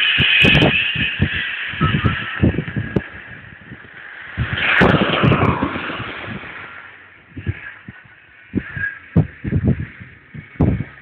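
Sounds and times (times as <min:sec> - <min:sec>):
distant radio station: 0:00.0 - 0:11.0
radio static hiss and crackle: 0:00.0 - 0:11.0.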